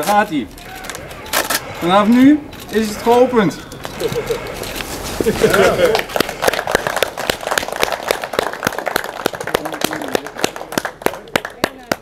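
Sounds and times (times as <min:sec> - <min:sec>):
voices: 0:00.0 - 0:06.1
small group clapping: 0:05.8 - 0:12.0.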